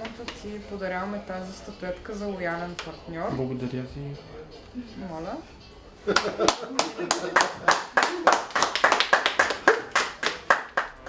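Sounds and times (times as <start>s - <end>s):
people clapping: 6.2s - 11.0s.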